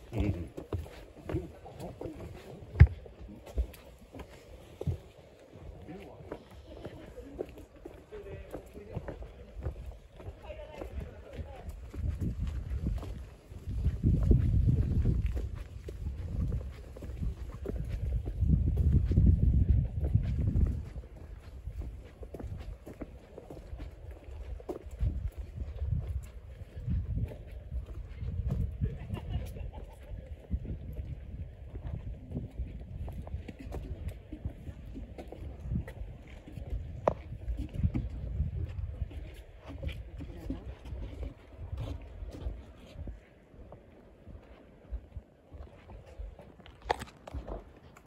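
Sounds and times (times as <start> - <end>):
footsteps on paved path: 0.0 - 48.0
wind rumble on microphone: 8.2 - 48.0.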